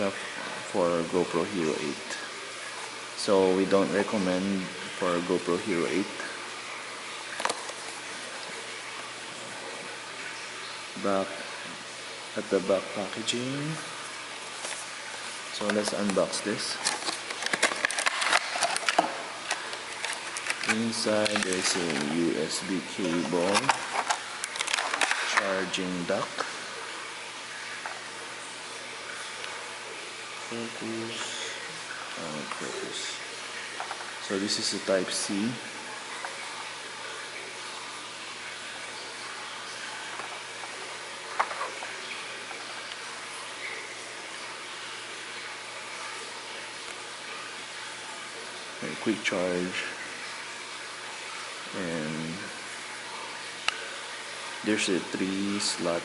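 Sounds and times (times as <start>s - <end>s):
steady hiss: 0.0s - 38.0s, 46.9s - 56.0s.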